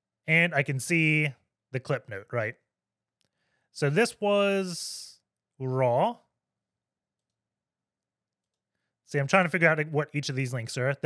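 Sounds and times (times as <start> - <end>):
person speaking: 0.3 - 2.5, 3.8 - 6.2, 9.1 - 11.0.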